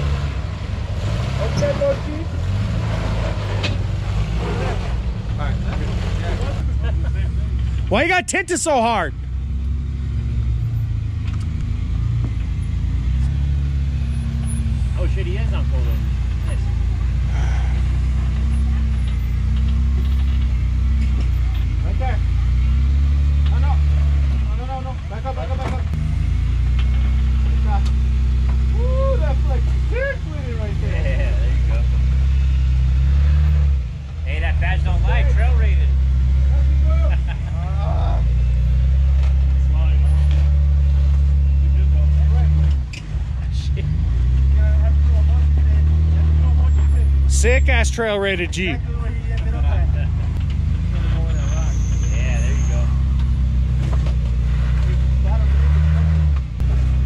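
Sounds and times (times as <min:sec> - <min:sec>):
off-road vehicle engine at low revs: 0:00.0 - 0:57.0.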